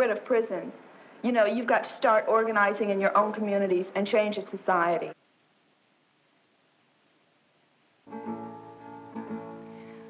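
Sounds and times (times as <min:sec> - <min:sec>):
acoustic guitar strumming chords: 0:08.1 - 0:10.0.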